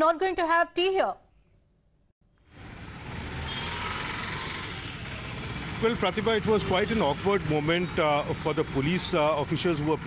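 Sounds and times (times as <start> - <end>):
street background rumble: 2.4 - 10.0.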